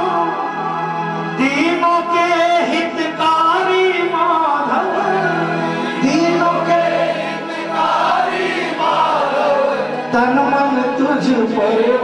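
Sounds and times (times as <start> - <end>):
man singing into a microphone: 0.0 - 0.6, 1.2 - 7.0, 9.8 - 12.0
musical accompaniment: 0.0 - 12.0.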